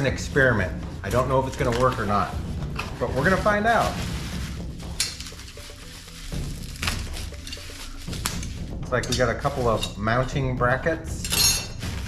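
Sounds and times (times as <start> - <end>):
plastic and bubble wrap rustling: 0.0 - 10.8, 11.5 - 12.0
faint background music: 0.0 - 12.0.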